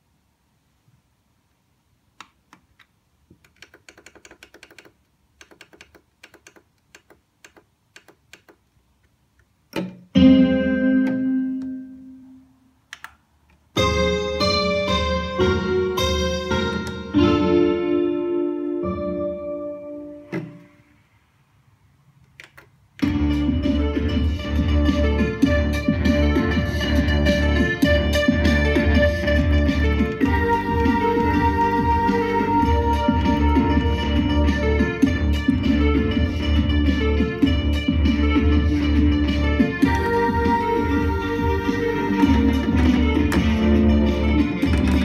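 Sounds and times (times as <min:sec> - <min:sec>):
synthesizer chords: 0:13.8 - 0:21.2, 0:23.0 - 0:45.0.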